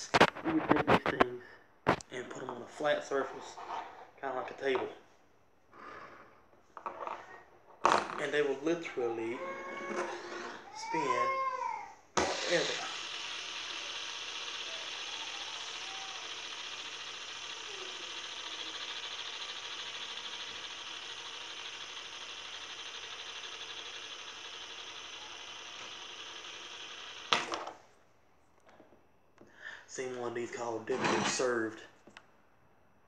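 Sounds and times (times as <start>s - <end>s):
fidget spinner whirring: 8.2s - 11.4s, 12.2s - 27.9s.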